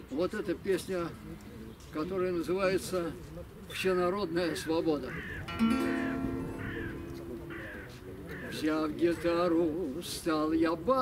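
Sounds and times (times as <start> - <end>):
bird calling: 4.5 - 9.4
acoustic guitar chord ringing: 5.5 - 7.9.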